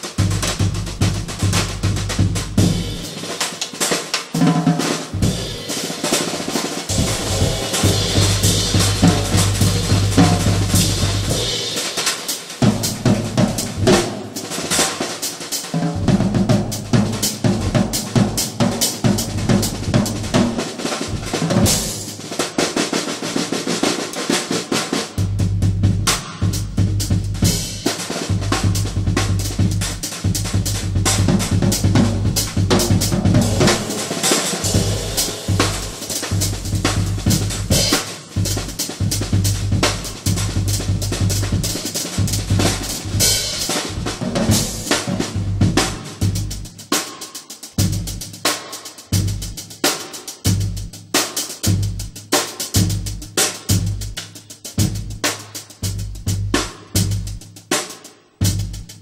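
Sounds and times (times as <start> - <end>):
drum kit played with sticks: 0.0 - 59.0.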